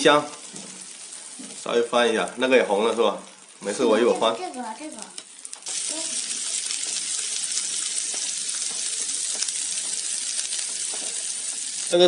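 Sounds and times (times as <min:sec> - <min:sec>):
meat sizzling on a griddle: 0:00.0 - 0:12.0.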